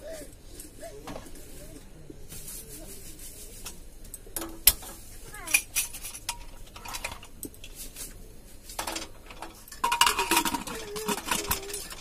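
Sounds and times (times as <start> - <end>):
metal pots and utensils clinking: 4.3 - 8.1, 8.7 - 12.0.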